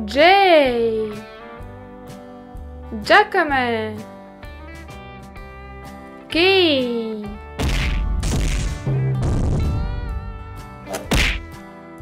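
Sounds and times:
children's background music: 0.0s - 12.0s
cartoon hit sound effect: 10.9s - 11.4s.

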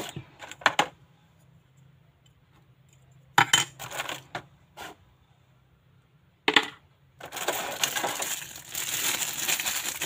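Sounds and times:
plastic scraping: 7.2s - 10.0s.

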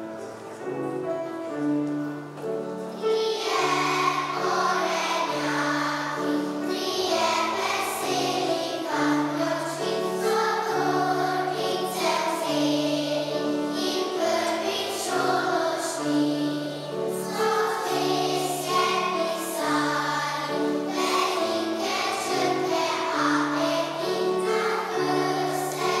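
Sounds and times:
children's choir singing: 0.0s - 26.0s
low instrumental accompaniment: 0.0s - 26.0s.

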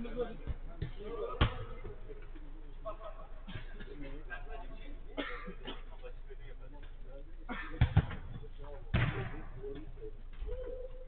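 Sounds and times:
football kicked thud: 7.8s - 9.4s.

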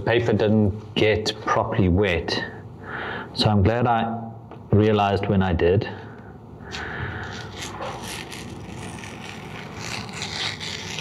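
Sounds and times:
tape peeling off paper: 7.2s - 11.0s.

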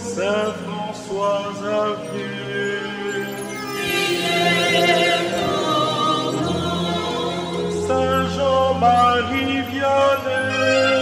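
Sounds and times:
choir singing held notes: 0.7s - 11.0s.

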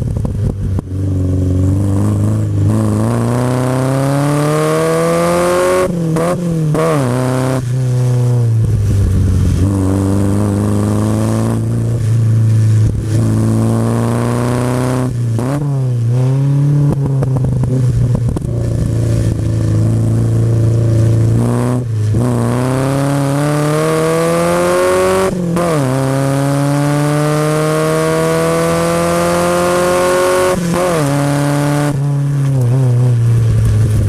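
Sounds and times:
car engine revving hard: 1.4s - 33.2s.

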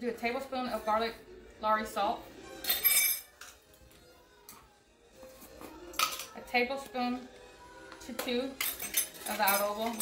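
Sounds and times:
metal spoon clinking on glass bowl: 2.6s - 3.5s, 8.6s - 10.0s.

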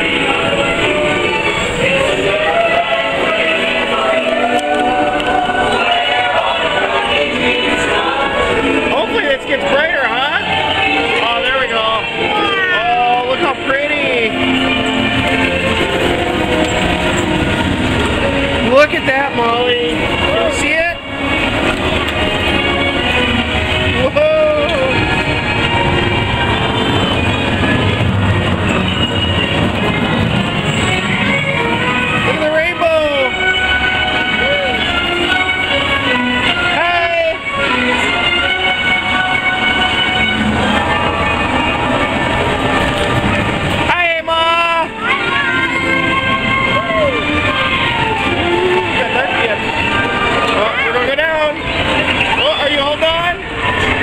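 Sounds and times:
ride soundtrack music: 0.0s - 54.0s
ride vehicle rumbling and clattering: 0.0s - 54.0s
loud rising sound: 21.1s - 32.3s, 39.0s - 44.3s.

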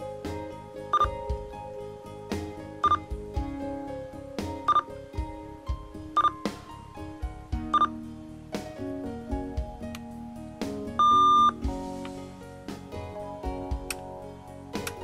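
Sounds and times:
background music with steady beat: 0.0s - 15.0s.

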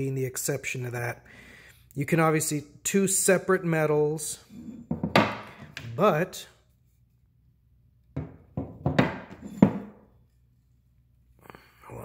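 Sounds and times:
tomahawks knocking on wooden table: 4.9s - 5.8s, 8.2s - 10.0s.

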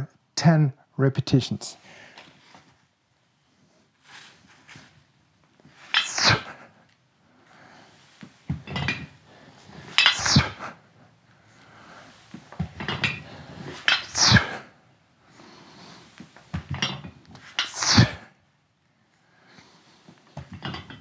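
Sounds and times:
weights clinking: 5.7s - 6.5s, 8.5s - 10.6s, 12.6s - 14.5s, 16.6s - 18.1s, 20.4s - 21.0s
person exhaling forcefully: 14.1s - 14.7s.

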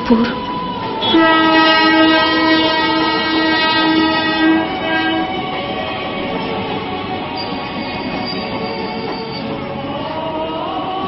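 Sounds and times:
train running rumble: 0.0s - 11.0s
train horn blast: 1.0s - 5.6s.

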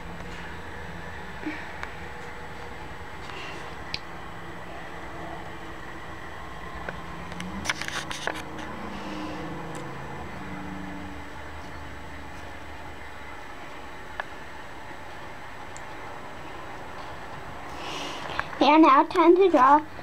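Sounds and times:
steady background hum: 0.0s - 20.0s.

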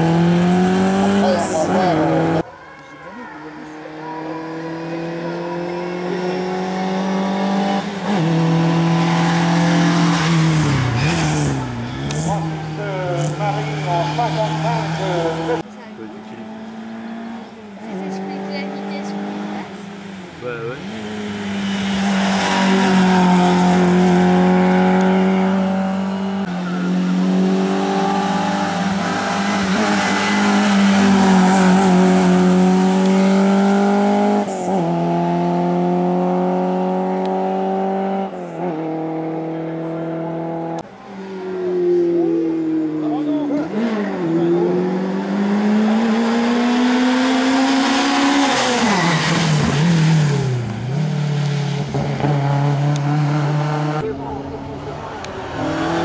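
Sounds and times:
racing car engine revving: 0.0s - 2.4s, 3.6s - 56.0s.

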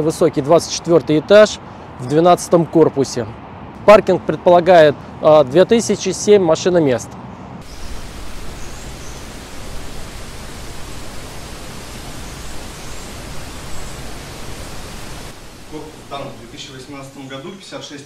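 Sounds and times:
steady rushing noise: 7.6s - 18.0s
person speaking: 15.7s - 18.0s.

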